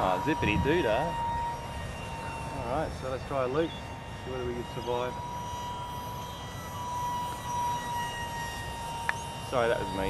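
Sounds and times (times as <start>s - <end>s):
wind rumble on microphone: 0.0s - 3.4s
electric ducted fan whining: 0.0s - 10.0s.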